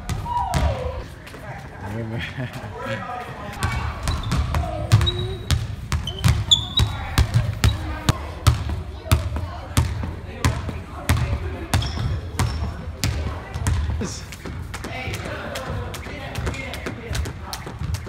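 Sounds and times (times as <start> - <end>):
basketballs bouncing on wooden floor: 0.0 - 1.0, 3.6 - 18.0.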